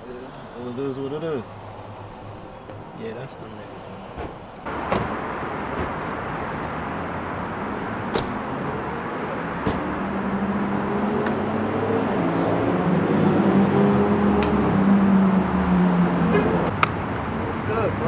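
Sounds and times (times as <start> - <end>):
vehicle engine humming: 0.0 - 18.0.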